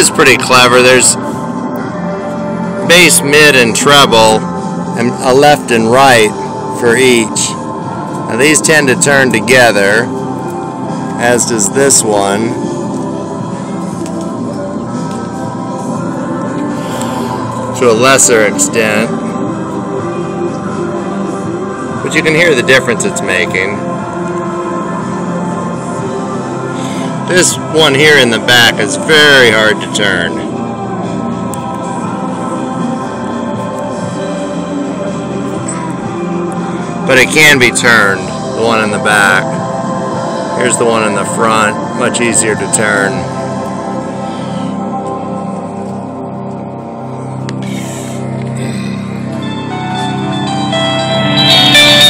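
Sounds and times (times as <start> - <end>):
music through stereo receiver: 0.0 - 52.0.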